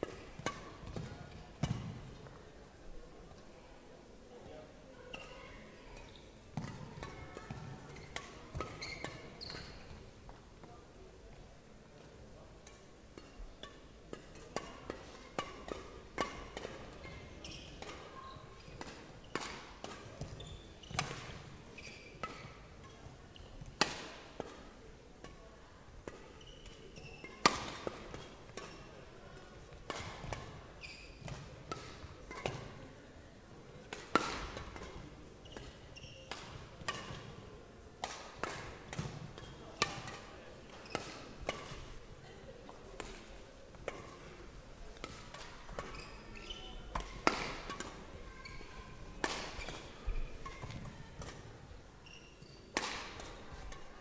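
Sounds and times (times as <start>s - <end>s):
shoe squeaks on court floor: 8.0s - 9.9s, 17.1s - 18.6s, 20.2s - 21.1s, 21.7s - 22.5s, 26.4s - 27.4s, 30.8s - 31.3s, 35.4s - 36.3s, 45.8s - 46.8s, 52.0s - 52.7s
badminton rackets hitting shuttlecock: 14.1s - 18.1s, 18.8s - 21.4s, 26.0s - 28.8s, 29.9s - 30.6s, 31.2s - 32.8s, 33.9s - 37.4s, 38.0s - 41.8s, 42.8s - 44.3s, 45.0s - 46.0s, 46.6s - 51.4s, 52.7s - 53.9s.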